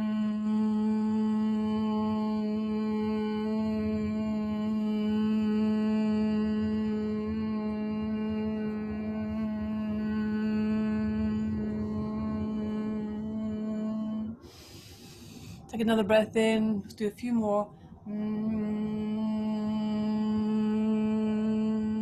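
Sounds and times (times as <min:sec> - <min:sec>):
woman humming: 0:00.0 - 0:15.0, 0:18.1 - 0:22.0.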